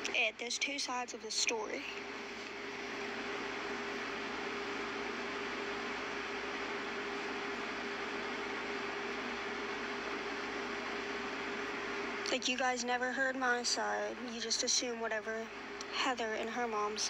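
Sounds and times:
steady hum tone: 0:00.0 - 0:17.0.

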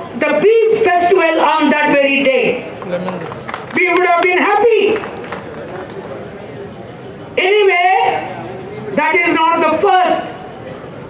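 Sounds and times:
faint voices: 0:02.4 - 0:11.0.

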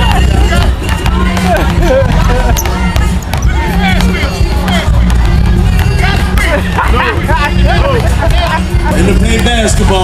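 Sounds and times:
basketball bouncing on court: 0:00.0 - 0:08.2
voices of children and adults: 0:00.0 - 0:10.0.

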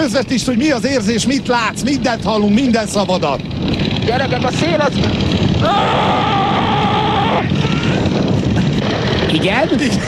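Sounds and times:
aircraft engine noise: 0:00.0 - 0:10.0
wind rush on microphone: 0:00.7 - 0:10.0
person crying out: 0:05.6 - 0:08.1.

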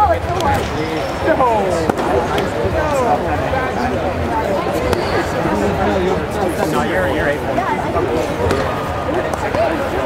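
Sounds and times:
chatter of voices in hall: 0:00.0 - 0:10.0.

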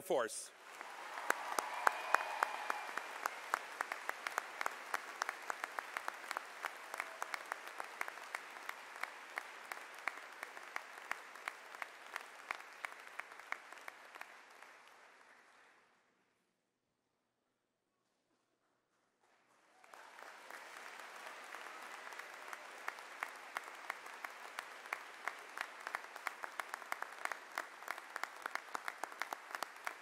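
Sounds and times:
audience applause: 0:00.6 - 0:15.9, 0:19.2 - 0:30.0.

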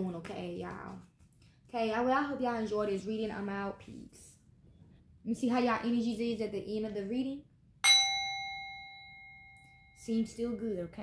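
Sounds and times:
small metal bell ringing: 0:07.8 - 0:11.0.

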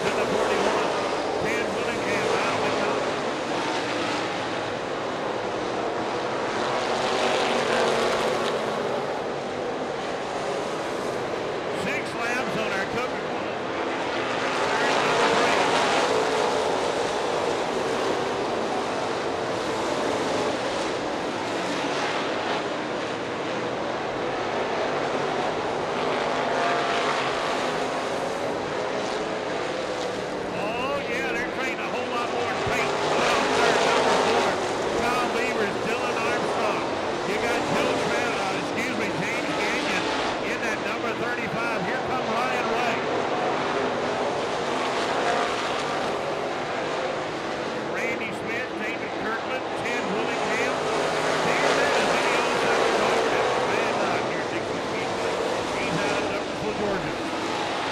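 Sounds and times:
racing car engines: 0:00.0 - 0:57.9.

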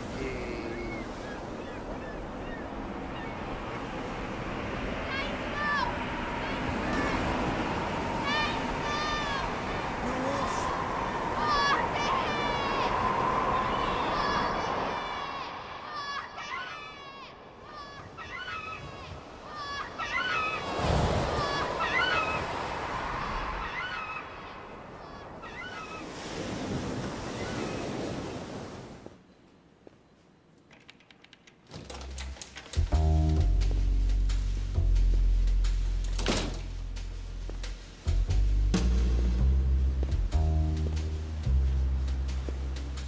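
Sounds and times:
birds calling: 0:00.0 - 0:04.1, 0:17.8 - 0:22.7, 0:23.5 - 0:26.3
surf: 0:00.0 - 0:16.5
wind: 0:00.0 - 0:43.0.

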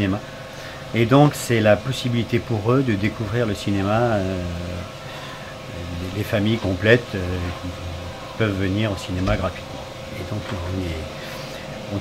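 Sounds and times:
low background hum: 0:00.0 - 0:12.0
man speaking: 0:00.9 - 0:04.9, 0:05.7 - 0:11.2.

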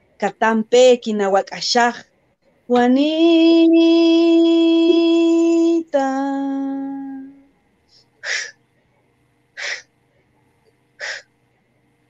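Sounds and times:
woman's sharp voiceless breaths: 0:07.9 - 0:08.6, 0:09.6 - 0:09.9, 0:11.0 - 0:11.3.

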